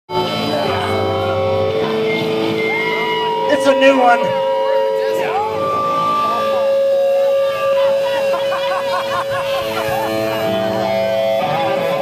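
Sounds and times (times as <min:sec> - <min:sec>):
electric guitars ringing: 0:00.1 - 0:12.0.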